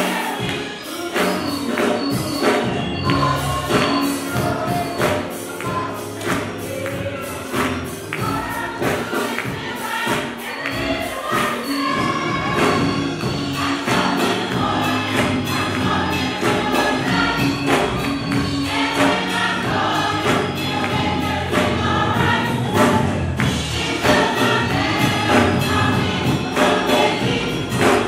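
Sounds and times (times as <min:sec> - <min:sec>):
gospel choir singing: 0:00.0 - 0:28.0
instrumental accompaniment with beat: 0:00.0 - 0:28.0.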